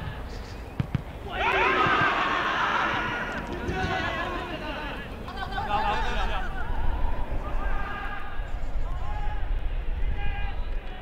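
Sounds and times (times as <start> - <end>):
players shouting calls: 0.0 - 11.0.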